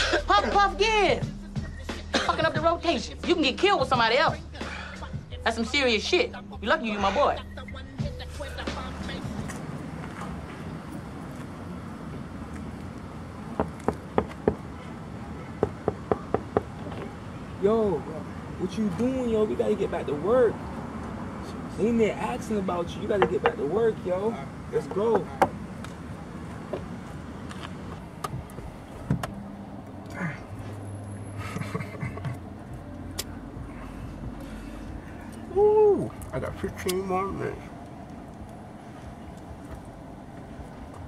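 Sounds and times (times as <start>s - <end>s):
car engine low hum: 0.0s - 41.0s
knocking on car window: 13.5s - 14.7s, 15.6s - 17.2s, 23.2s - 23.6s, 28.2s - 29.4s.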